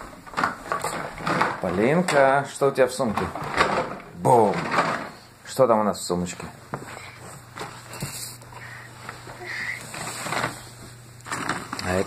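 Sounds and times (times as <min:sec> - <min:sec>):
plastic blocks knocking in a box: 0:00.2 - 0:02.4, 0:03.1 - 0:05.2.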